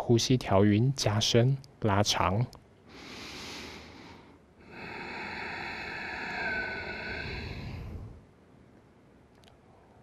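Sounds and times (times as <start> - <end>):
deep slow breath: 2.9 - 8.3.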